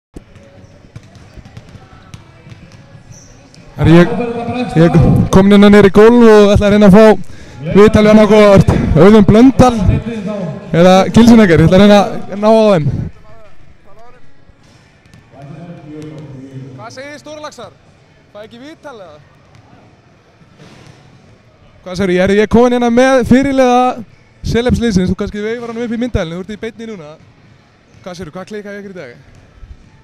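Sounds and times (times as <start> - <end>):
basketballs bouncing on wooden floor: 0.2 - 3.3
voices in a hall: 0.2 - 30.0
man's voice: 3.8 - 12.9.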